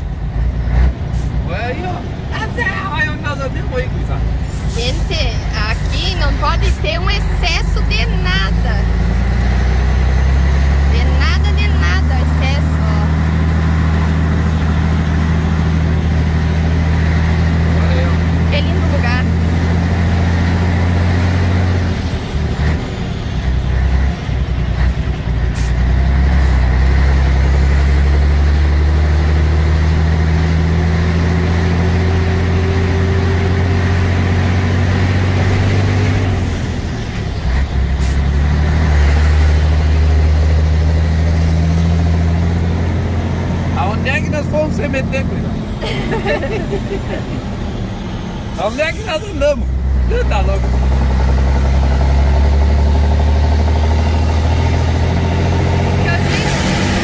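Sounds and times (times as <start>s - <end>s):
diesel truck engine drone: 0.0s - 57.0s.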